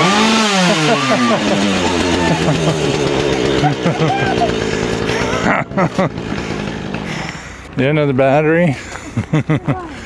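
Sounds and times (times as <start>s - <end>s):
chainsaw engine running: 0.0s - 10.0s
person laughing: 0.4s - 7.2s, 8.7s - 10.0s.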